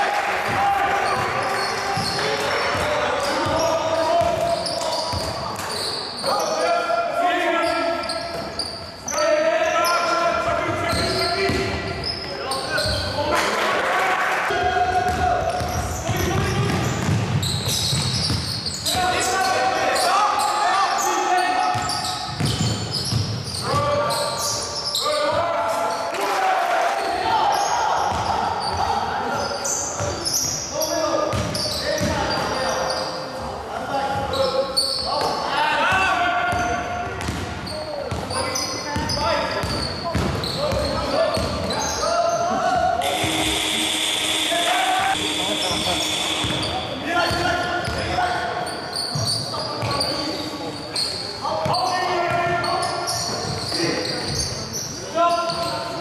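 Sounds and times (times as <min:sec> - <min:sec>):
basketball bouncing on court: 0:02.0 - 0:05.4, 0:10.7 - 0:11.8, 0:15.0 - 0:18.7, 0:21.7 - 0:23.8, 0:31.3 - 0:32.2, 0:36.5 - 0:38.4, 0:39.0 - 0:41.8, 0:42.7 - 0:44.4, 0:45.1 - 0:48.2
people shouting and calling: 0:42.5 - 0:47.4.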